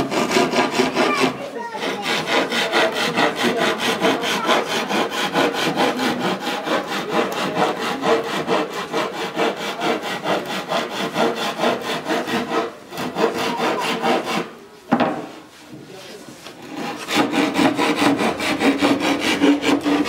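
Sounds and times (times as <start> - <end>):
hand saw cutting wood: 0.0 - 15.5, 16.3 - 20.0.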